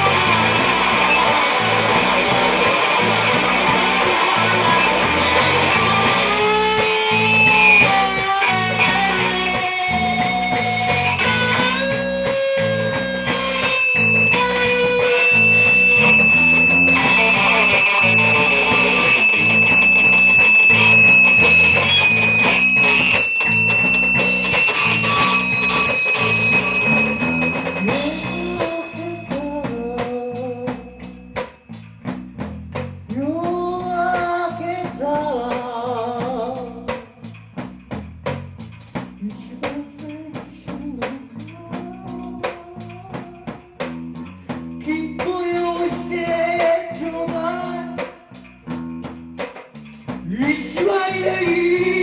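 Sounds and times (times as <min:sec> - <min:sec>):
electric guitar sliding notes: 0:00.0 - 0:32.2
drum kit beat with cymbals: 0:00.0 - 0:52.0.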